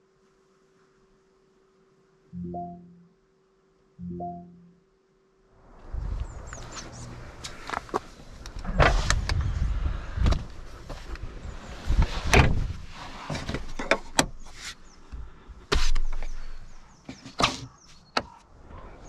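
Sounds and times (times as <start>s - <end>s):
car cabin fittings clicking and knocking: 13.5s - 14.4s.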